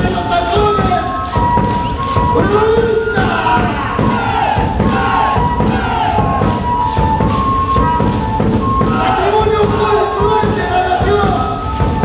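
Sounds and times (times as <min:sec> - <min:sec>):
crowd shouting and whooping: 0:00.0 - 0:11.5
held instrumental melody: 0:00.0 - 0:12.0.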